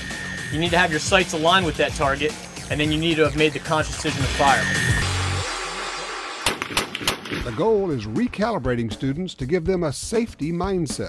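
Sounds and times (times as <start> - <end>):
rifle shots: 6.4 - 7.6.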